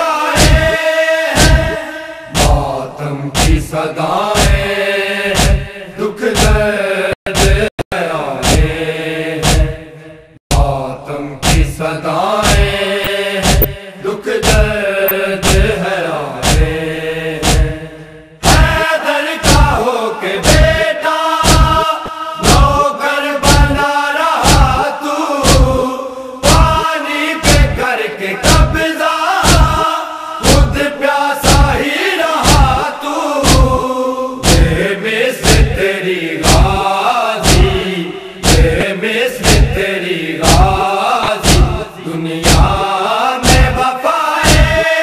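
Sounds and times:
men chanting in unison: 0:00.0 - 0:45.0
hands beating on chests: 0:00.4 - 0:00.8, 0:05.4 - 0:05.7, 0:09.4 - 0:09.7, 0:13.4 - 0:13.7, 0:17.4 - 0:17.8, 0:21.4 - 0:22.8, 0:29.4 - 0:30.8, 0:37.4 - 0:37.8, 0:40.4 - 0:41.8
chest beating: 0:13.4 - 0:13.8, 0:21.4 - 0:22.7, 0:37.4 - 0:38.8, 0:40.4 - 0:42.7.

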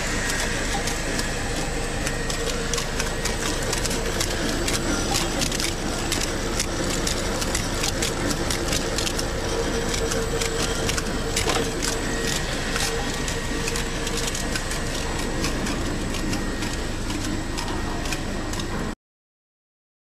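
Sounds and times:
machine hum: 0:00.0 - 0:19.0.

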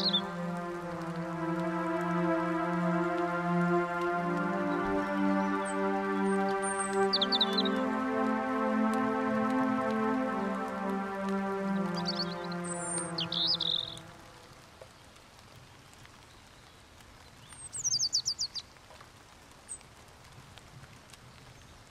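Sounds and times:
birds chirping: 0:00.0 - 0:14.3
held music chord: 0:00.0 - 0:14.6
falling whistled bird notes: 0:12.0 - 0:14.0.

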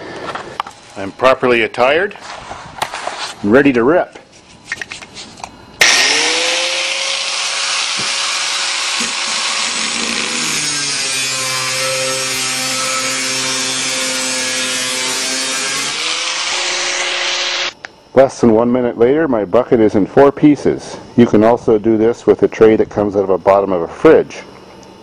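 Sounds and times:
power saw cutting: 0:05.8 - 0:17.8.

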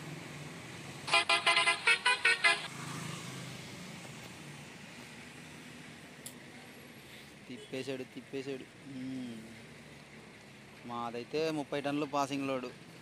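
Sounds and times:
diesel lorry engine hum: 0:00.0 - 0:13.0
truck horn short toots: 0:01.1 - 0:02.7.

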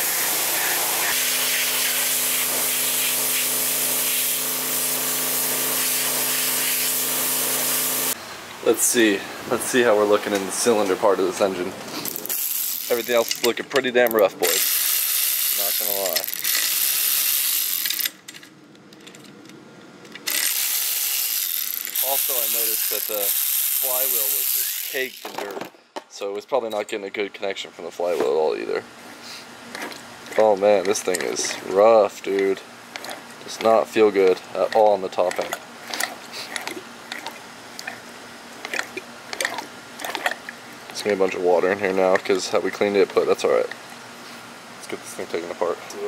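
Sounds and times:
electric ratchet whirring: 0:00.0 - 0:08.2, 0:12.0 - 0:13.4, 0:14.0 - 0:19.2, 0:20.1 - 0:25.4.

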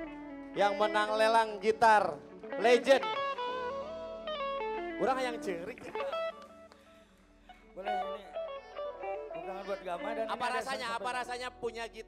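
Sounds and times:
electric guitar single notes: 0:00.0 - 0:11.4
person speaking: 0:00.6 - 0:03.2, 0:05.0 - 0:06.4, 0:09.1 - 0:12.0.

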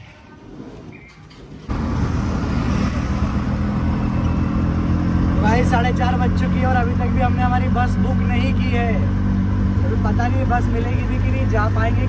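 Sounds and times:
auto-rickshaw engine running: 0:01.7 - 0:12.0.

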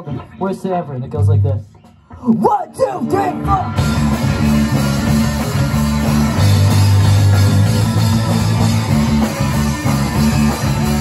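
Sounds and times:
punk rock band playing live: 0:01.6 - 0:11.0.

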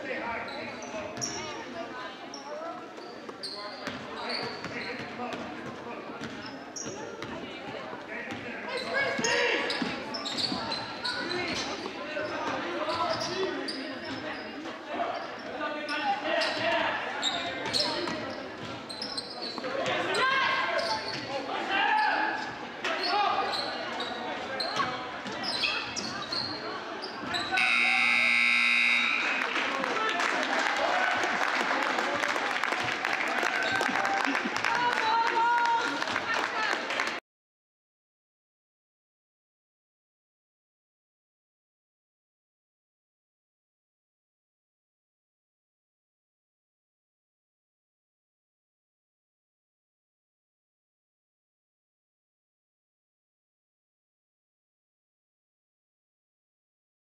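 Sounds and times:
sneaker squeaks on hardwood: 0:03.0 - 0:05.2, 0:08.8 - 0:14.5, 0:17.2 - 0:19.7, 0:22.4 - 0:29.3
crowd voices echoing: 0:27.4 - 0:36.9
scoreboard horn: 0:27.6 - 0:29.6.

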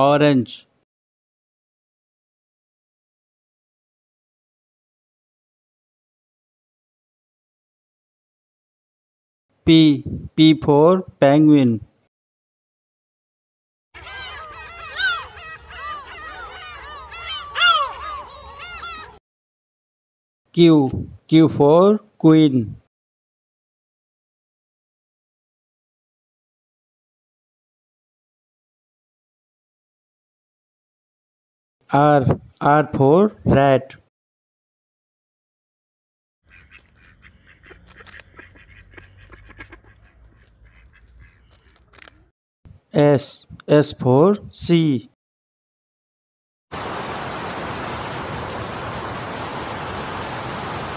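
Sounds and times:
penguins trumpeting calls: 0:14.0 - 0:19.2
small scattered clicks: 0:37.8 - 0:38.6, 0:41.5 - 0:42.2.

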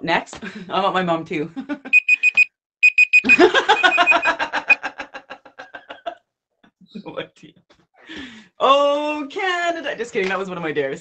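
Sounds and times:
timer alarm beeping: 0:01.9 - 0:04.8
people laughing: 0:03.2 - 0:06.2.

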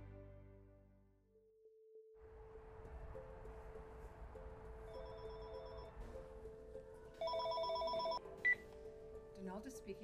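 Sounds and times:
cordless telephone ringing: 0:07.2 - 0:08.2.

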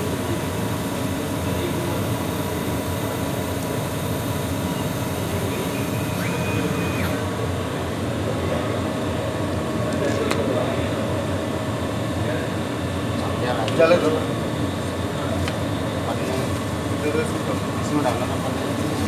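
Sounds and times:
laser cutter mechanical whir: 0:00.0 - 0:19.0.

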